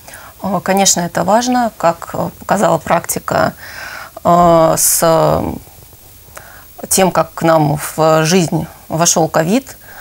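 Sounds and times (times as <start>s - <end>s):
woman speaking: 0.4s - 3.6s, 4.2s - 5.7s, 6.7s - 9.8s.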